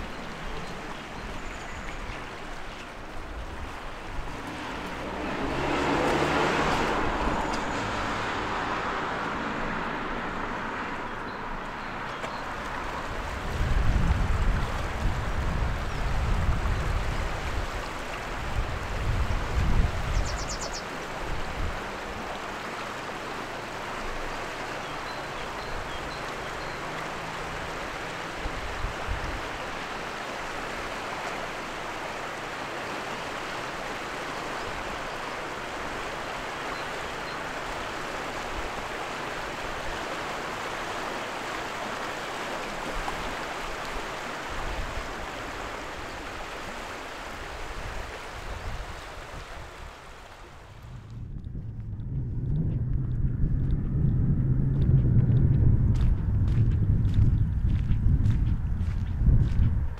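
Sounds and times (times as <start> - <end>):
river running over rocks: 0.0 - 50.9
loud low rumble: 50.8 - 59.8.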